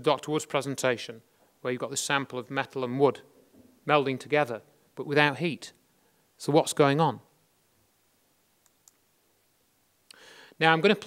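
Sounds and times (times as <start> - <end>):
man speaking: 0.0 - 5.8, 6.4 - 7.3, 10.6 - 11.0
faint clicks: 8.6 - 9.0.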